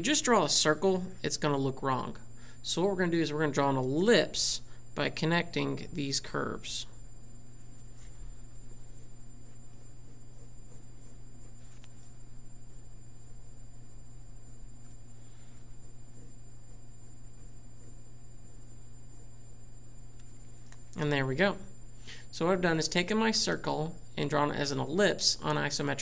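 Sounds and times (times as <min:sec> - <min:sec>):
steady low hum: 0:00.0 - 0:26.0
pen strokes on paper: 0:07.5 - 0:19.5.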